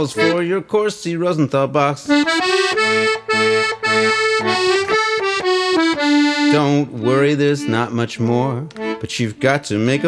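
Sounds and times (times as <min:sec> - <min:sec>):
accordion melody with bass chords: 0:00.0 - 0:10.0.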